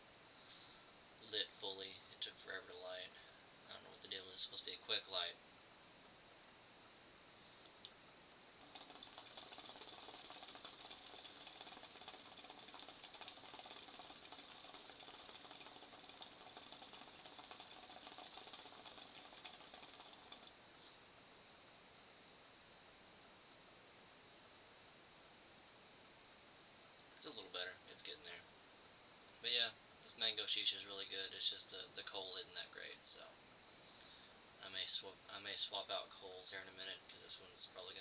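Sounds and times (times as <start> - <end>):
hookah water bubbling: 8.6 - 20.7.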